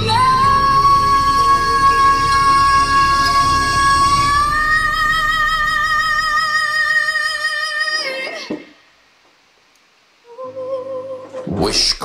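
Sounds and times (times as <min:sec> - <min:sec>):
woman singing high note: 0:00.0 - 0:08.5.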